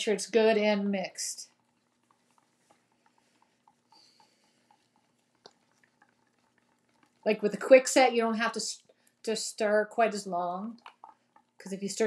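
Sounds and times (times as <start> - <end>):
stir stick ticking in plastic cup: 1.0 - 12.0.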